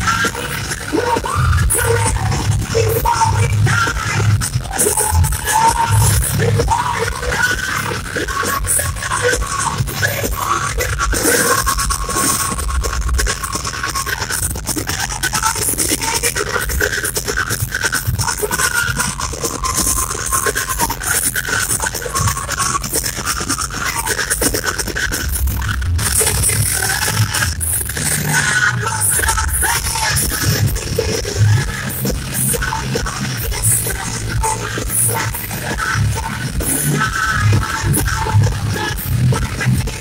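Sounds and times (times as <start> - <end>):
metal band playing live: 0.0 - 40.0.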